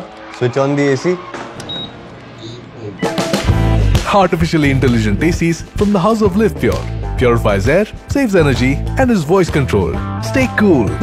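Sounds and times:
air conditioner beep: 1.6s - 2.0s.

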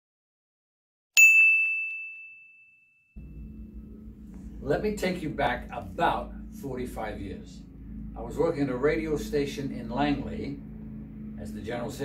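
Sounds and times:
bright bell-like ding: 1.2s - 3.5s
low room hum: 3.2s - 12.0s.

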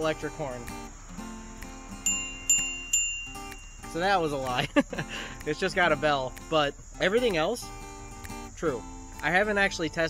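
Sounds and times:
bicycle bell ringing: 2.0s - 4.3s.

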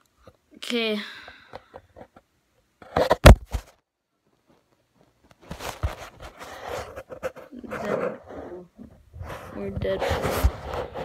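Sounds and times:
phone handling rustling and bumps: 2.8s - 3.8s.

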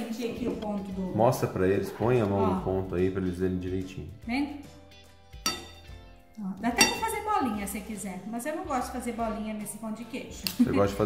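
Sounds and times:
spoons clinking against ceramic bowl: 5.4s - 6.0s, 6.7s - 7.3s.

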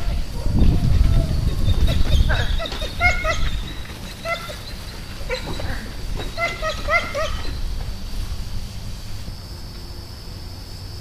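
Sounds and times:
dog barking high-pitched: 2.3s - 4.6s, 6.2s - 7.6s.

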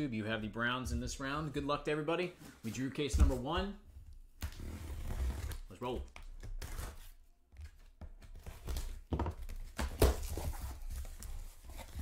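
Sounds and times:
cardboard and tape tearing: 6.4s - 7.2s.

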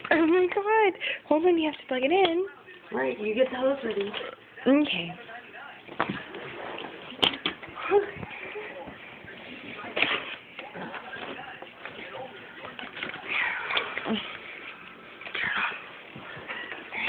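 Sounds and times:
people whispering: 10.6s - 17.0s.

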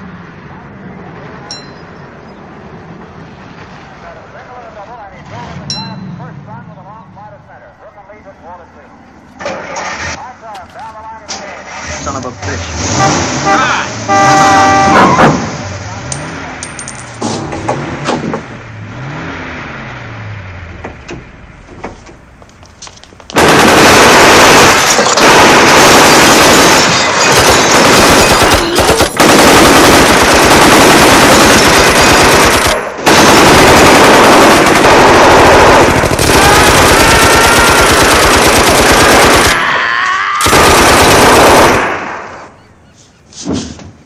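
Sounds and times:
submachine guns firing automatic bursts: 23.4s - 39.6s, 40.4s - 42.1s.

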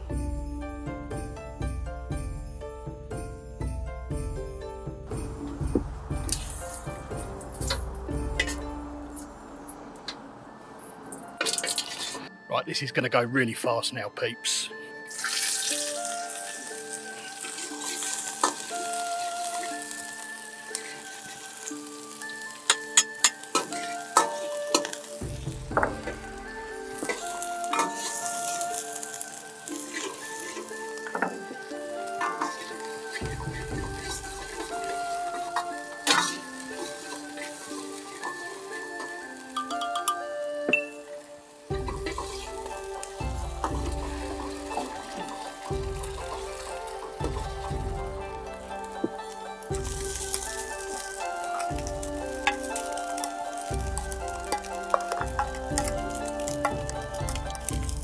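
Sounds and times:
shallots sizzling in hot oil: 5.1s - 9.9s, 10.8s - 12.3s, 15.0s - 58.0s
metal ladle scraping wok: 6.3s - 10.1s, 11.4s - 12.3s, 25.8s - 40.2s, 41.7s - 58.0s.

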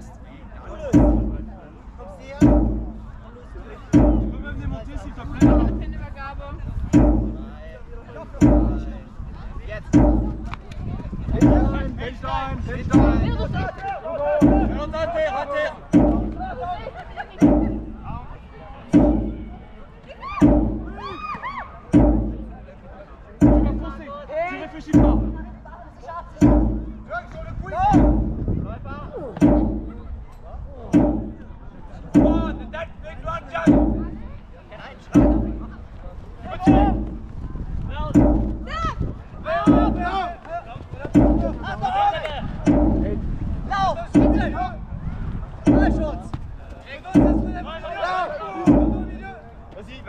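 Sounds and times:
drum beats: 0.0s - 13.7s, 14.3s - 18.3s, 18.9s - 30.3s, 30.9s - 44.9s, 45.7s - 49.5s.

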